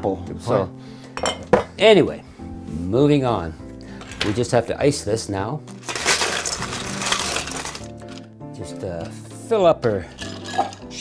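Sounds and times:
soft background music: 0:00.0 - 0:11.0
ice cubes rattling and crunching: 0:05.7 - 0:08.3, 0:10.2 - 0:10.8.

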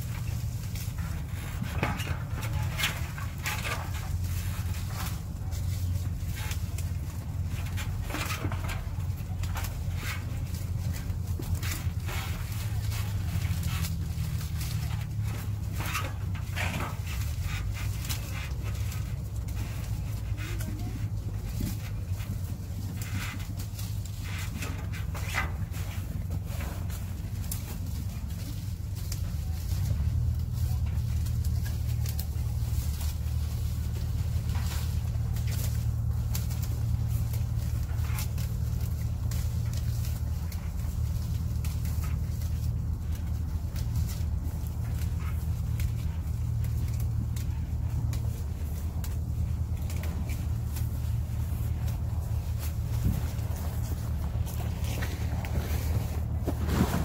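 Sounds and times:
steady low rumble: 0:00.0 - 0:57.0
tree leaves and branches rustling: 0:00.0 - 0:57.0.

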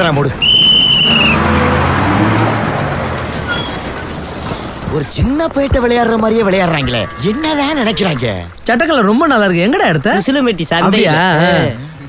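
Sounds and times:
moving bus rushing and humming: 0:00.0 - 0:05.6
whistle long steady note: 0:00.4 - 0:01.4
thin high squeal: 0:03.2 - 0:04.9.

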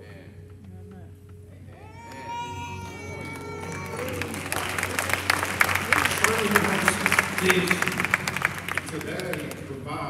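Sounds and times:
congregation applause: 0:02.0 - 0:10.0.

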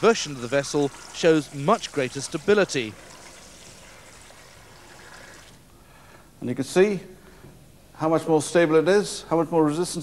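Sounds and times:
water trickling: 0:00.0 - 0:05.6.

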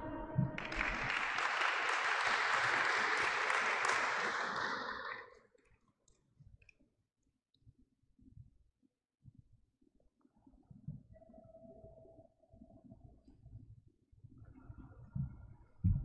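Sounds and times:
small group applauding: 0:00.0 - 0:05.4.

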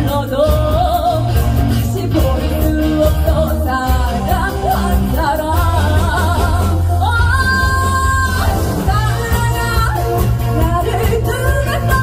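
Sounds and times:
live band playing pop music: 0:00.0 - 0:12.0
woman singing: 0:00.0 - 0:12.0.

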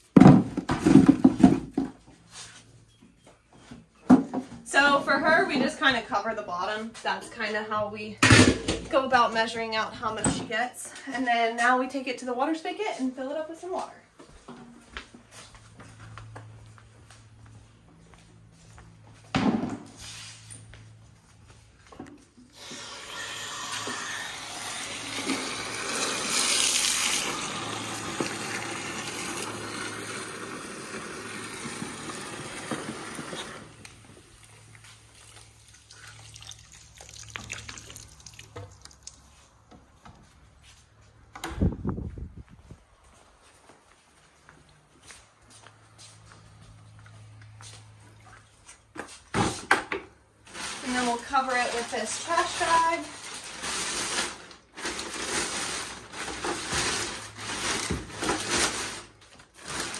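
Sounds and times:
hose water running into bucket: 0:22.5 - 0:39.3, 0:50.5 - 0:59.9.

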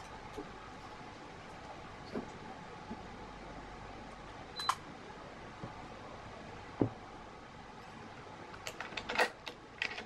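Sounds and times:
room noise: 0:00.0 - 0:10.0.

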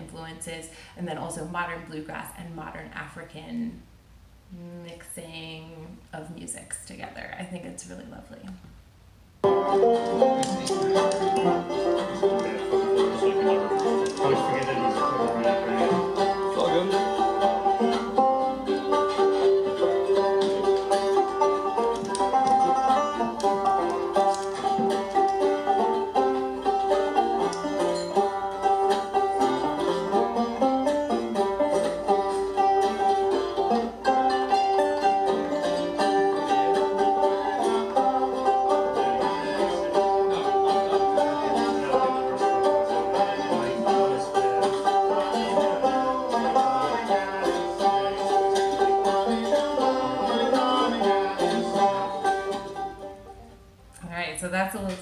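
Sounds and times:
acoustic string jam: 0:00.0 - 0:08.6, 0:09.2 - 0:55.0.

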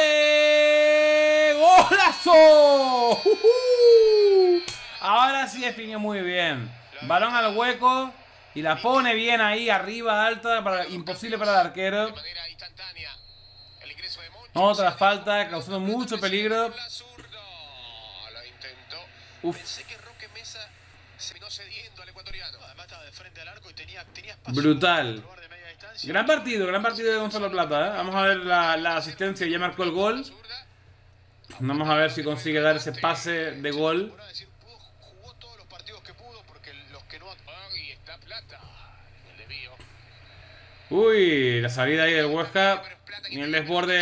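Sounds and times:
man exclaiming: 0:00.0 - 0:04.7
sports commentator speaking: 0:00.0 - 0:13.0, 0:13.9 - 0:20.7, 0:40.9 - 0:44.0.

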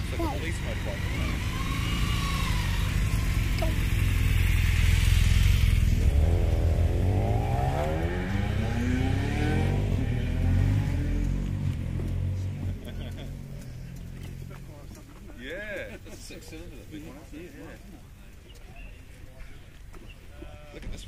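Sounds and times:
motorcycle engine accelerating away: 0:00.0 - 0:15.0
motorcycle engine rumbling past: 0:00.0 - 0:15.3.

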